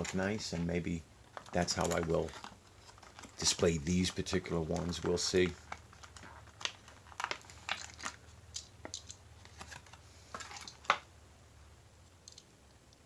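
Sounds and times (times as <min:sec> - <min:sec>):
plastic packaging crinkling: 0:00.0 - 0:11.1.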